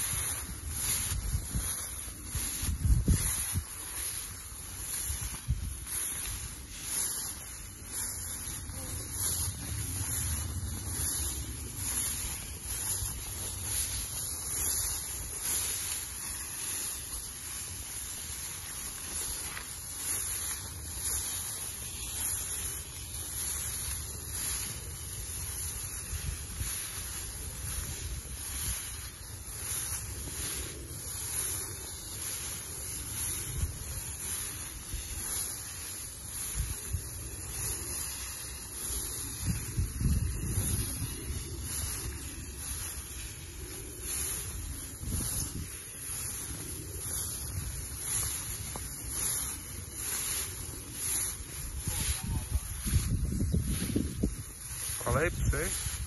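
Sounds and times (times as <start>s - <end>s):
grass swishing against legs: 0.0s - 56.0s
wind rumble on microphone: 0.0s - 56.0s.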